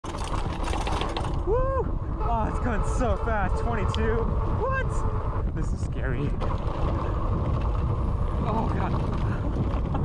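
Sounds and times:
bike rattling over bumps: 0.0s - 10.0s
low rumble: 0.1s - 10.0s
rider exclamation: 1.4s - 5.3s.

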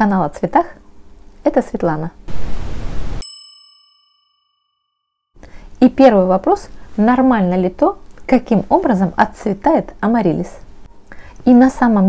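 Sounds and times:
bell-like ding: 3.2s - 5.2s.

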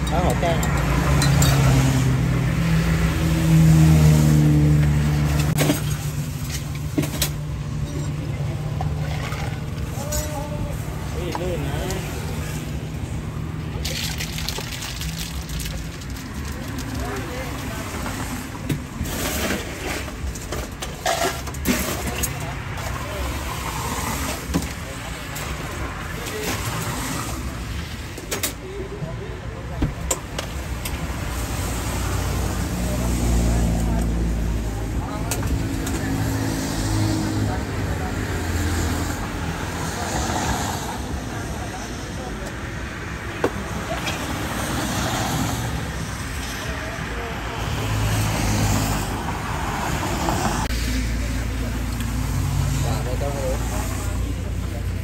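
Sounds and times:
road traffic passing: 0.0s - 55.0s.

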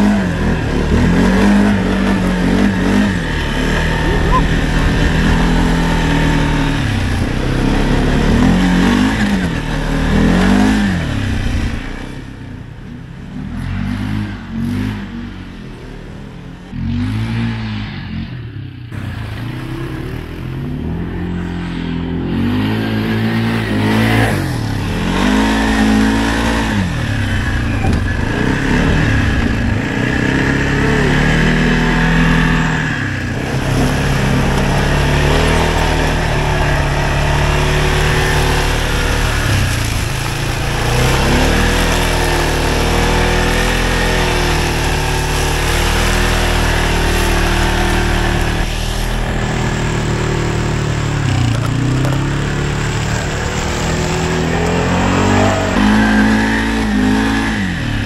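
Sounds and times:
atv engine revving: 0.0s - 58.0s.

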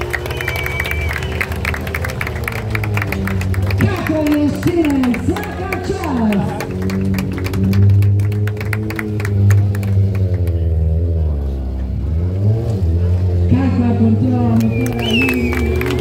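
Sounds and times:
motorcycle engine revving: 0.0s - 16.0s.

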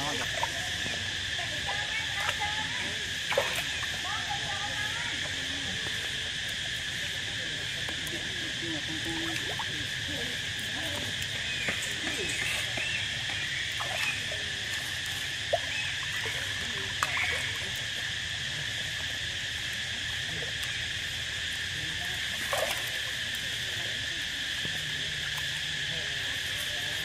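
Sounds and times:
high insect chorus droning: 0.0s - 27.0s.

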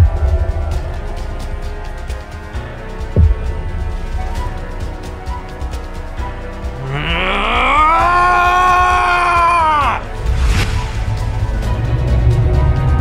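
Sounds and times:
background music: 0.0s - 13.0s
long rising cry: 6.8s - 10.6s.

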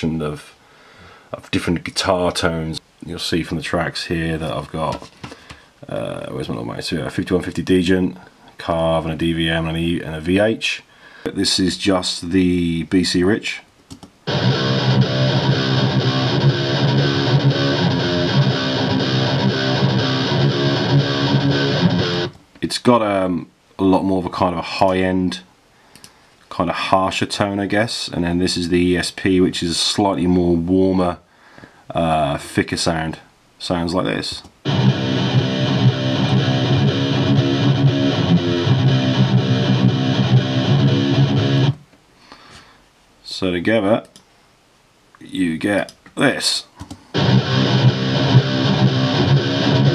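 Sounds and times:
distorted metal guitar riff: 14.3s - 22.3s, 34.6s - 41.8s, 47.2s - 49.9s.

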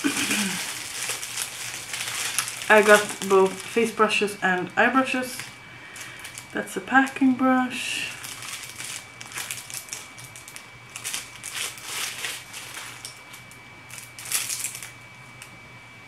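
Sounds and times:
plastic wrapping crinkling: 0.0s - 7.2s, 8.0s - 15.5s.

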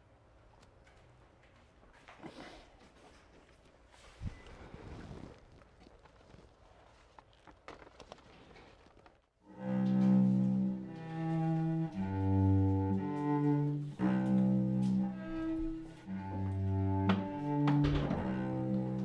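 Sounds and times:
bowed string melody: 9.5s - 19.0s.

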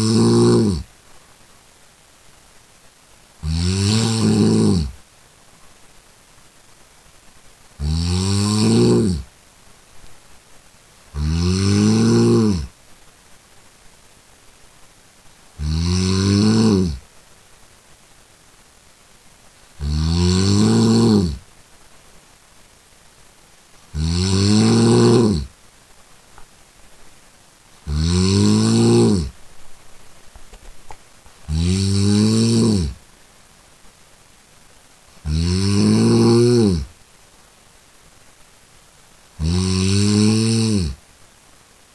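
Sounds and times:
person snoring: 0.0s - 0.9s, 3.4s - 5.0s, 7.8s - 9.3s, 11.1s - 12.7s, 15.6s - 17.0s, 19.8s - 21.4s, 23.9s - 25.5s, 27.8s - 29.4s, 31.5s - 33.0s, 35.2s - 36.9s, 39.4s - 41.0s.

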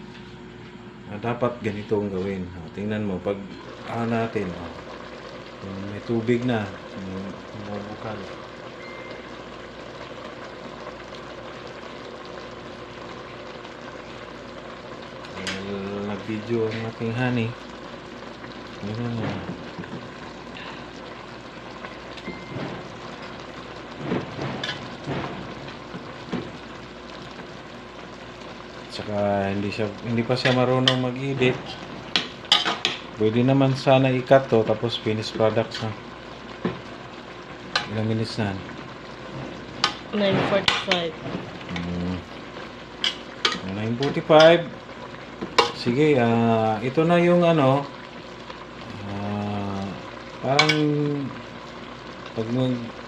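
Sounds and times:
vegetables simmering in a pot: 0.0s - 53.0s.

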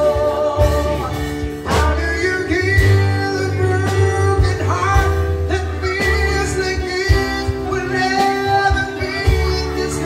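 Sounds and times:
bass notes: 0.0s - 10.0s
electric guitar: 0.0s - 10.0s
electric keyboard: 0.0s - 10.0s
person singing into a microphone: 0.0s - 10.0s.

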